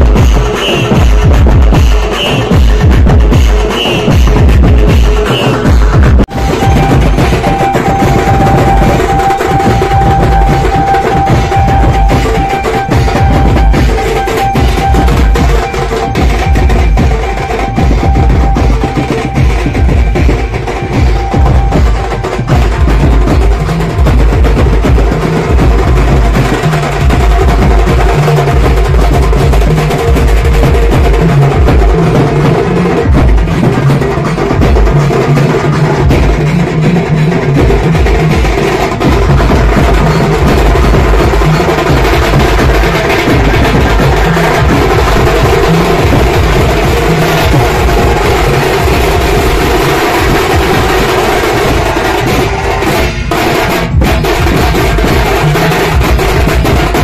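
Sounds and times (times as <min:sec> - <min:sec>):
loud band music: 0:00.0 - 0:57.0
marching drums beaten with sticks: 0:00.0 - 0:57.0
heavy amplified bass: 0:02.5 - 0:57.0.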